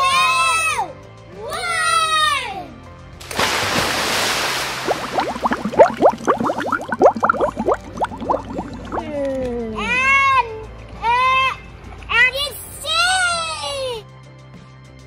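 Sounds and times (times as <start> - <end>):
child shouting: 0.0 - 2.7
splash into swimming pool: 3.2 - 6.8
underwater bubbling: 4.6 - 9.4
short rising chirps underwater: 4.8 - 9.2.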